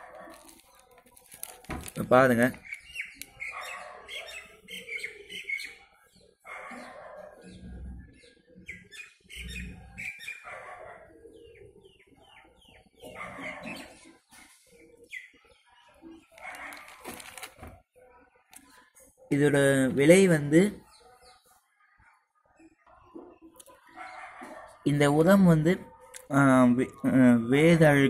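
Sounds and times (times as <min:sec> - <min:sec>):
plastic packet crinkling and rustling: 0:00.1 - 0:03.3, 0:16.3 - 0:17.8.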